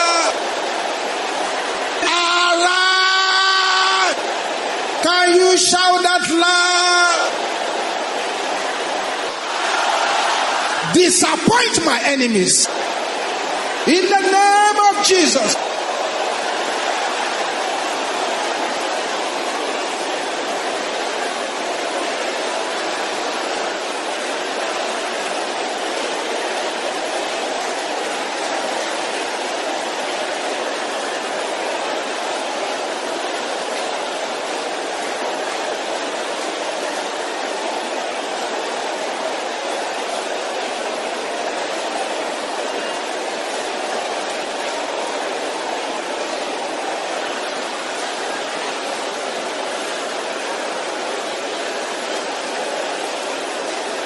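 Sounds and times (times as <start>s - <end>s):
congregation praying aloud: 0.0s - 46.0s.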